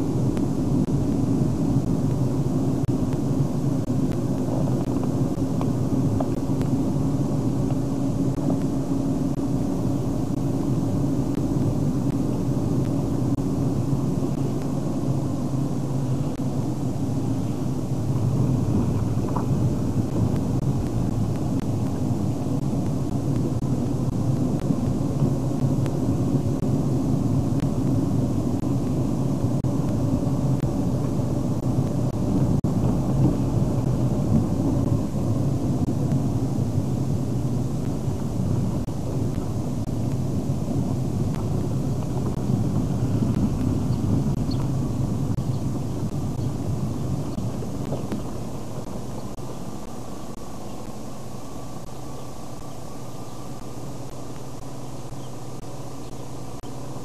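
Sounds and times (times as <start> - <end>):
car engine drone: 0.0 - 57.0
road rumble: 0.0 - 57.0.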